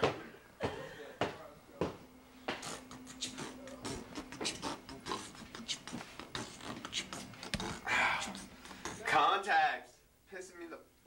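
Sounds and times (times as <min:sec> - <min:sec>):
steady low hum: 0:00.0 - 0:11.0
faint voices: 0:02.6 - 0:09.2.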